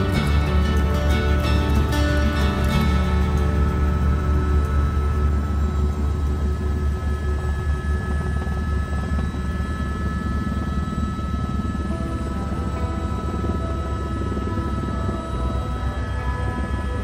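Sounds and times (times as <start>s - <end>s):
helicopter rotor and engine drone: 0.0s - 17.0s
soft background music: 0.0s - 17.0s
thin steady whine: 0.0s - 17.0s.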